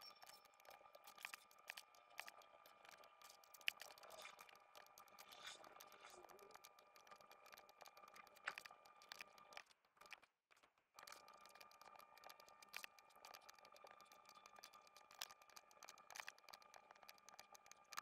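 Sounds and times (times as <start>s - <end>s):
mouse and keyboard clicks: 0.2s - 10.3s, 11.0s - 18.0s.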